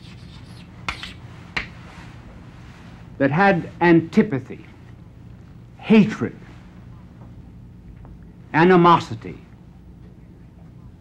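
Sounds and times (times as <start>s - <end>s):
chalk tapping on blackboard: 0.0s - 1.8s
low steady hum: 0.0s - 11.0s.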